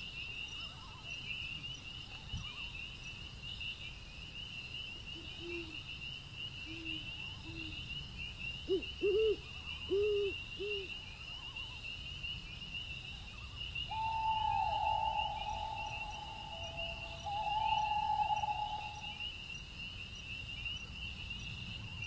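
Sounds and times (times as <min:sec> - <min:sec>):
night insects trilling: 0:04.4 - 0:21.8
owl hooting: 0:08.7 - 0:10.9, 0:13.9 - 0:19.3
long held tone: 0:13.9 - 0:19.3.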